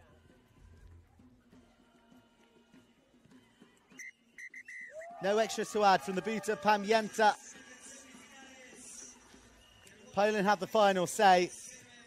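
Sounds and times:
referee's whistle blasts: 4.0 - 5.4.

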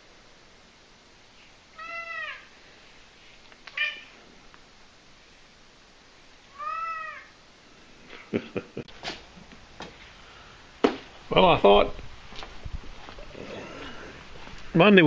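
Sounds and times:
cat meowing: 1.8 - 2.5, 3.7 - 4.2, 6.5 - 7.3.

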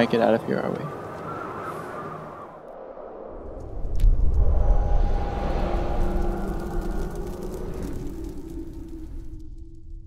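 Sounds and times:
deep rumble: 2.6 - 10.0.

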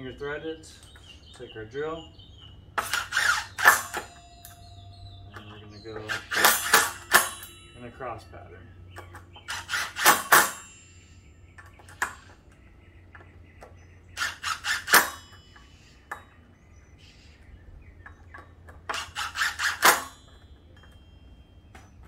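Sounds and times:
cordless drill rapid metallic clicking: 2.8 - 4.1, 9.4 - 10.6, 14.2 - 15.2, 18.9 - 20.1.

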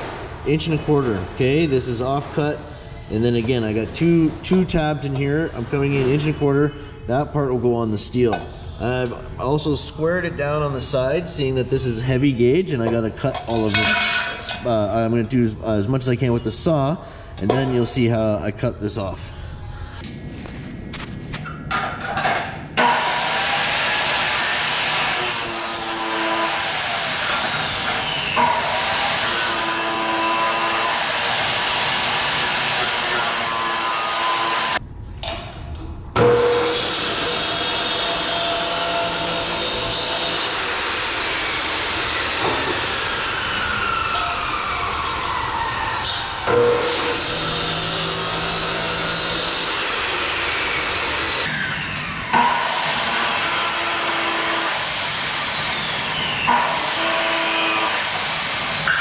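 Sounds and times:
chop saw cutting steel: 22.8 - 34.8, 36.2 - 59.0.

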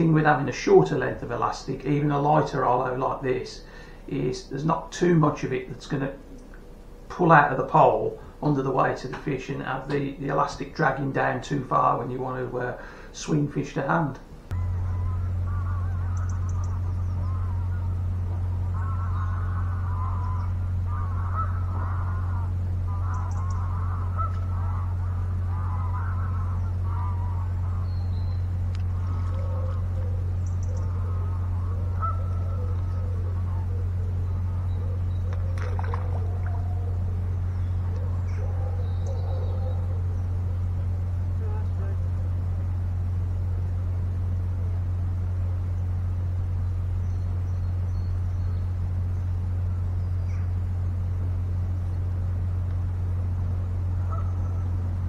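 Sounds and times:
distant waterfowl calling: 0.0 - 55.0
steady low hum: 0.0 - 55.0.

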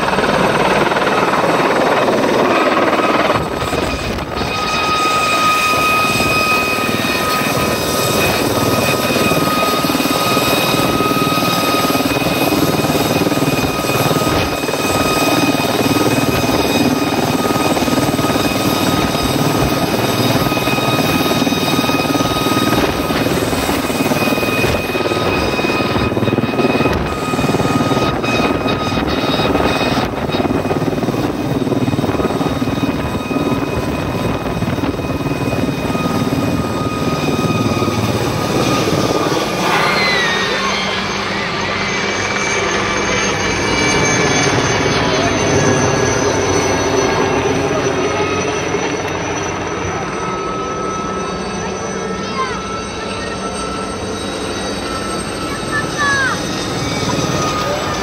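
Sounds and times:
helicopter rotor and turbine whine: 0.0 - 58.0.

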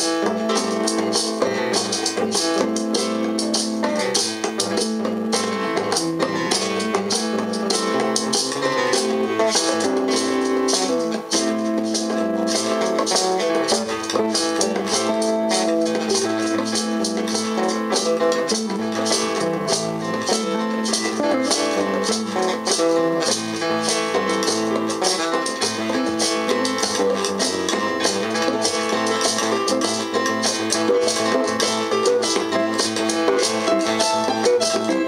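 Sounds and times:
funk-jazz band playing: 0.0 - 35.0
hand percussion: 0.0 - 35.0.

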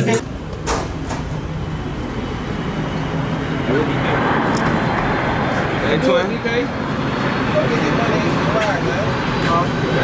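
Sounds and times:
low rumbling noise: 0.0 - 10.0.

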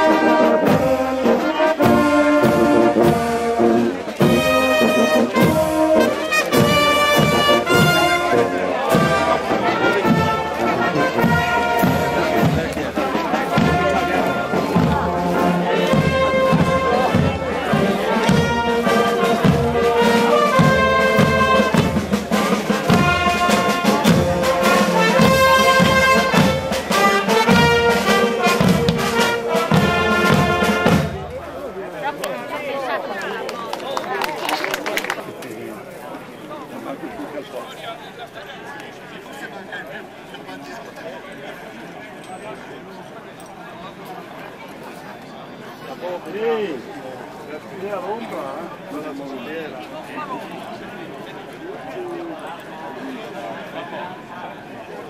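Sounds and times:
marching brass band: 0.0 - 32.8.

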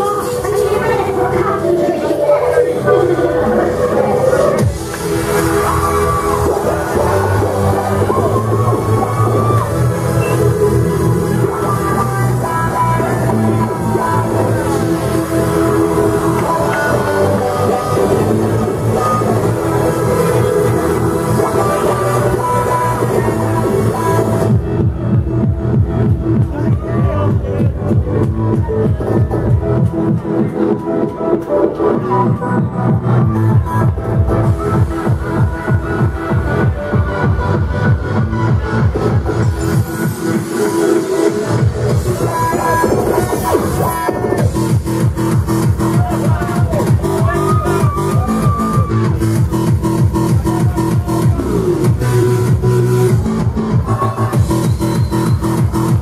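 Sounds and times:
loud techno dance music: 0.0 - 56.0.

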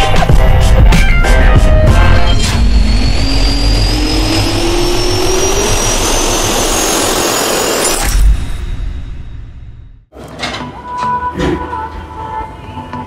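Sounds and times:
deep rumble: 0.3 - 10.1
jet engine whine rising: 0.8 - 10.0.

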